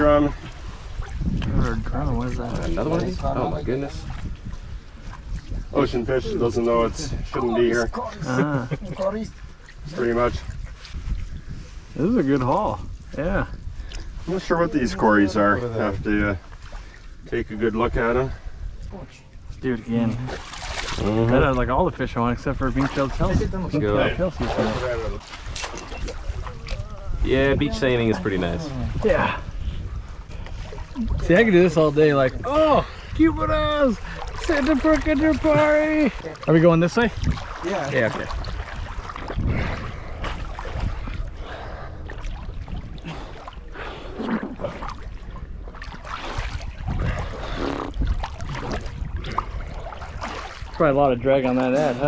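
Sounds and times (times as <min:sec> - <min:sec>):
water moving: 0:00.0 - 0:52.0
wind rumbling on microphone: 0:00.0 - 0:52.0.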